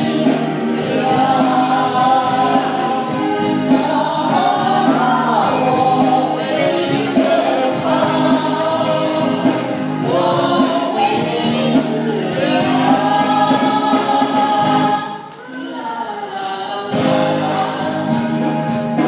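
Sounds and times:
band accompaniment: 0:00.0 - 0:19.0
voices singing together: 0:00.0 - 0:19.0.

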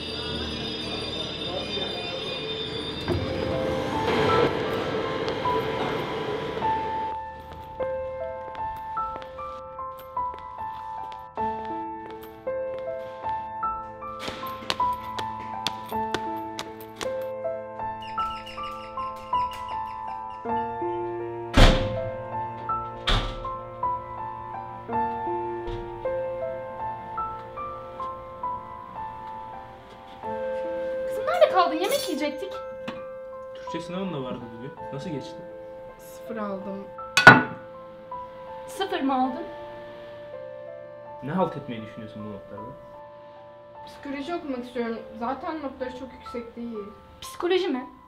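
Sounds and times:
high whining tones: 0:00.0 - 0:07.2
train car rumble: 0:00.0 - 0:07.2
background music of sustained notes: 0:00.0 - 0:48.0
front door shutting: 0:21.5 - 0:23.7, 0:25.6 - 0:26.2
sharp clunk: 0:37.2 - 0:37.6.

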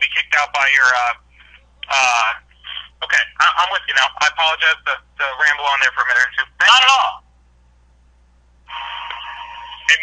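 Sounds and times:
telephone line hiss: 0:08.7 - 0:10.0.

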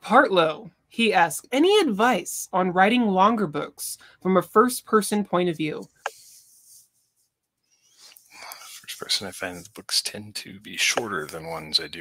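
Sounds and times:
person speaking: 0:05.6 - 0:06.8, 0:08.1 - 0:12.0.

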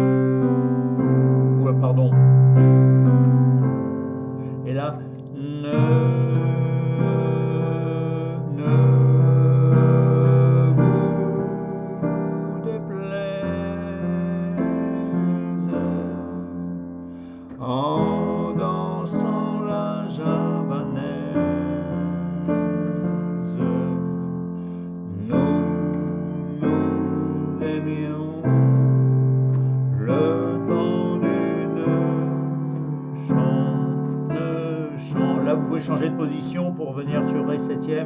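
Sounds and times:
digital piano slow chords: 0:00.0 - 0:38.0.

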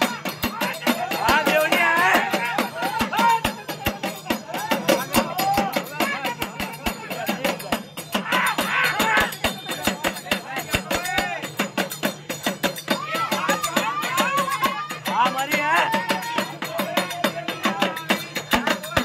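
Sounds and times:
fast hand drumming: 0:00.0 - 0:19.0.

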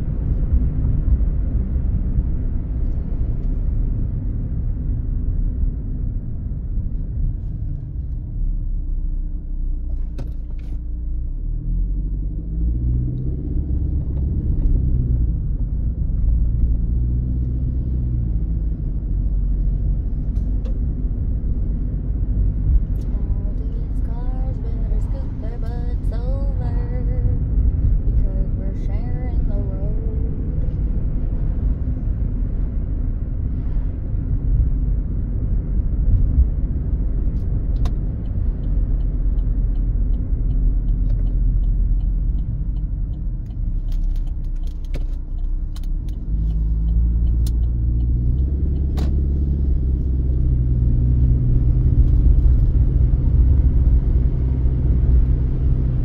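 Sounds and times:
road and engine rumble: 0:00.0 - 0:56.0.

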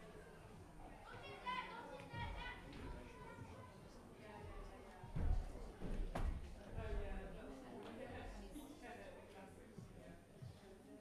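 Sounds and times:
children speaking: 0:00.9 - 0:04.8.

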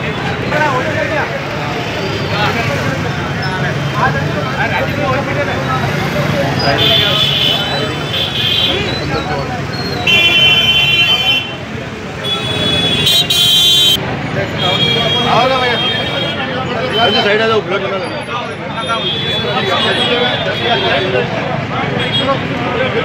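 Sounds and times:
men talking over one another: 0:00.0 - 0:13.1, 0:14.0 - 0:23.0
high-pitched vehicle horns honking: 0:10.0 - 0:14.0.

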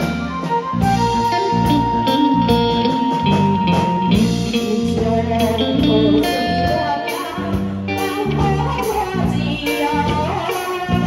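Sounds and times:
live band playing pop: 0:00.0 - 0:11.0
electric guitar held high note: 0:00.8 - 0:08.7.

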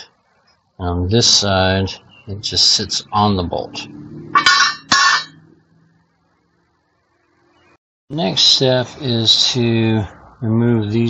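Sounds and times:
metal bar clinking on concrete: 0:04.4 - 0:05.4.

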